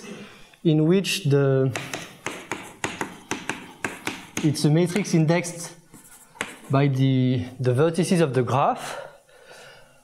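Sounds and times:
chalk tapping on blackboard: 0:01.7 - 0:05.3, 0:05.9 - 0:06.8.

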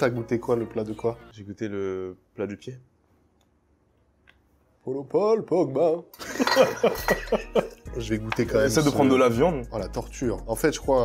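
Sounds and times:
man laughing: 0:06.2 - 0:07.8.

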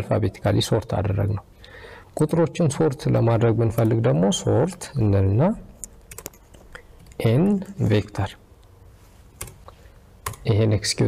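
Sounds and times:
person talking: 0:02.2 - 0:05.8, 0:07.1 - 0:08.4
computer keyboard keystrokes: 0:06.1 - 0:07.2, 0:09.4 - 0:09.6, 0:10.2 - 0:10.5.

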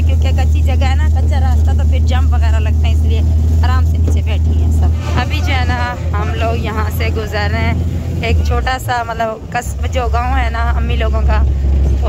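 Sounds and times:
motor rickshaw engine droning: 0:00.0 - 0:12.0
voices chattering: 0:00.6 - 0:11.5.

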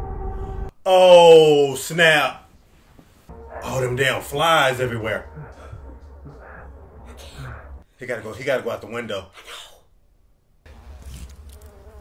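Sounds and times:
flies buzzing: 0:10.7 - 0:12.0.

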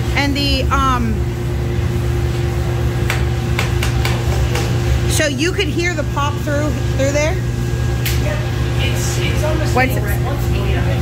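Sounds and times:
coffee roaster droning: 0:00.0 - 0:11.0.

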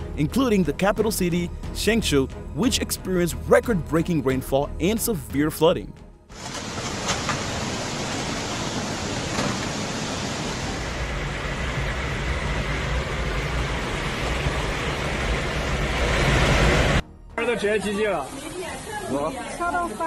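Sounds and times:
rushing floodwater: 0:06.4 - 0:17.0.

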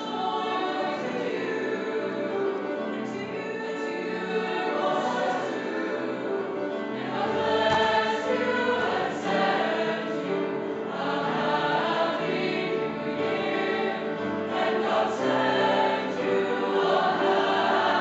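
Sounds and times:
mixed choir singing in parts: 0:00.0 - 0:18.0.

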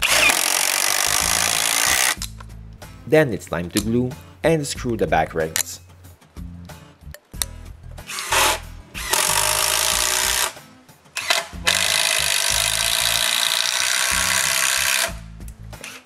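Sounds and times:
drill driving screws into wood: 0:00.0 - 0:02.2, 0:08.0 - 0:10.6, 0:11.2 - 0:15.2.

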